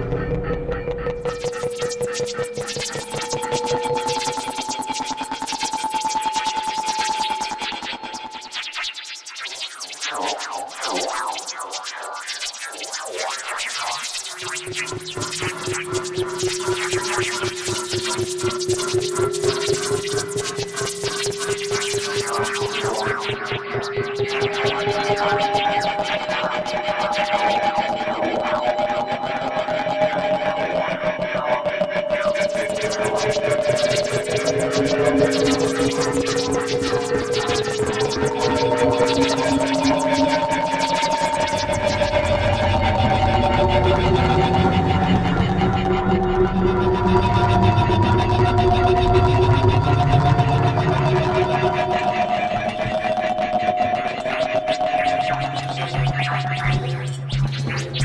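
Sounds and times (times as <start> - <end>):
rapidly pulsing texture: 32.6 - 43.7.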